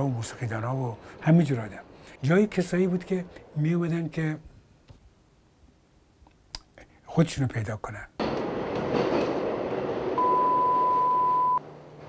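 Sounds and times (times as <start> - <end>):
subway train in tunnel: 8.2 - 12.0
long steady beep: 10.2 - 11.6.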